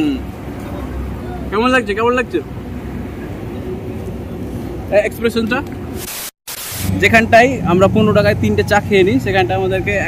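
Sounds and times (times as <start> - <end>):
short burst of hiss: 6.0 - 7.0.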